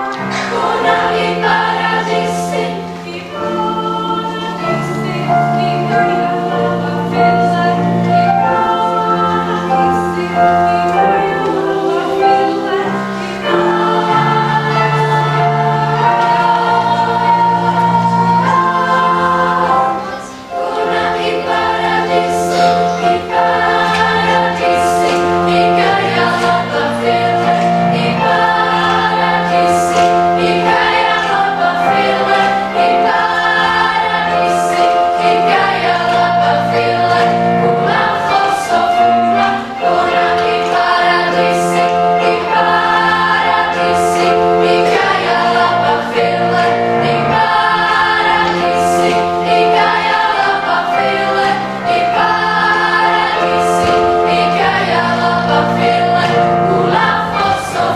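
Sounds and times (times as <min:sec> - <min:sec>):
children's choir singing: 0:00.0 - 0:57.9.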